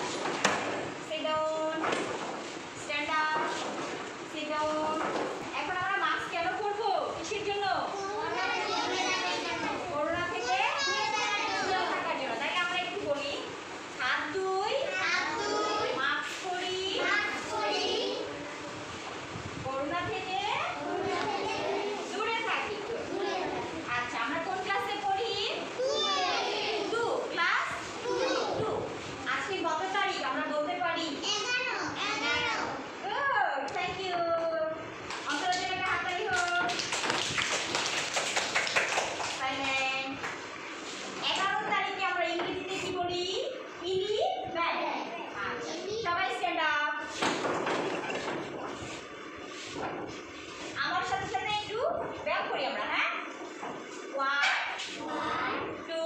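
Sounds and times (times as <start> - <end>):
young children speaking: 7.9 - 12.4, 14.8 - 19.0, 20.7 - 24.1, 25.5 - 29.3, 31.2 - 33.2, 43.9 - 46.4, 54.4 - 56.0
children clapping: 35.1 - 40.4.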